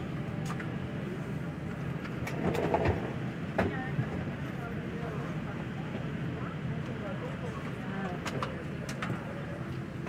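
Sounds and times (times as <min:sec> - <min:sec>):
airliner cabin hum: 0:00.0 - 0:10.0.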